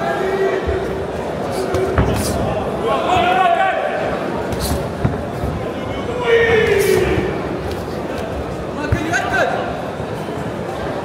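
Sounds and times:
background murmur of a hall: 0.0s - 11.0s.

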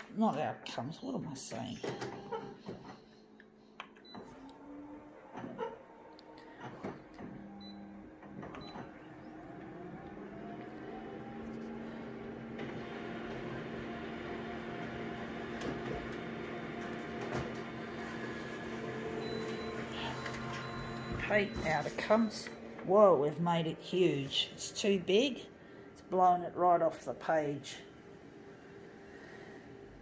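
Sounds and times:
photocopier motors whining and humming: 1.7s - 30.0s.

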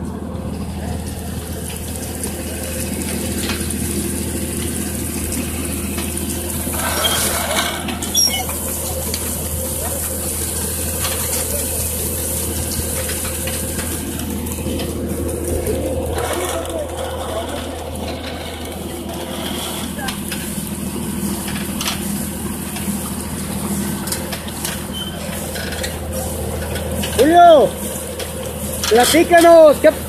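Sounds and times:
tractor engine droning: 0.0s - 30.0s.

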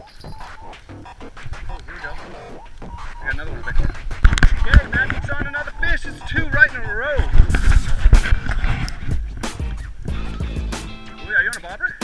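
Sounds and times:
people talking: 1.8s - 7.8s, 11.2s - 12.0s.

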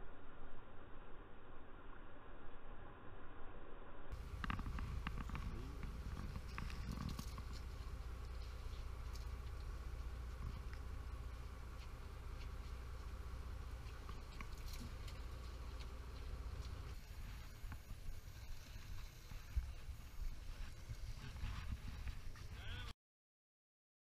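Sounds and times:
boat machinery droning: 4.1s - 22.9s.

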